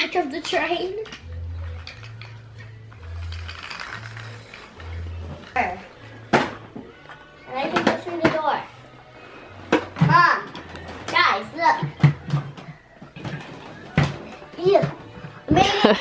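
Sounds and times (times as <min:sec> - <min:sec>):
wooden toy pieces clacking: 0:01.0 - 0:02.4.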